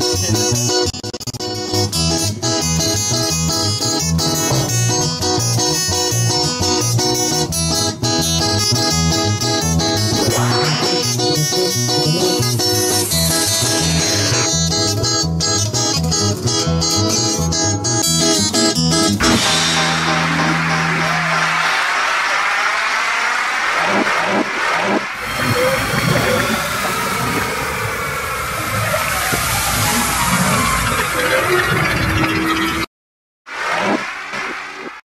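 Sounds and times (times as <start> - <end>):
acoustic guitar strumming: 1.5 - 21.9.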